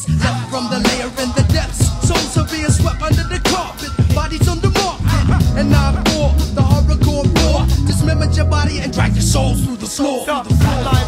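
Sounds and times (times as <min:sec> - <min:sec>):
rapping over a beat: 0:00.0 - 0:11.0
drum hits: 0:01.4 - 0:08.2
deep bass line: 0:04.0 - 0:09.8, 0:10.5 - 0:11.0.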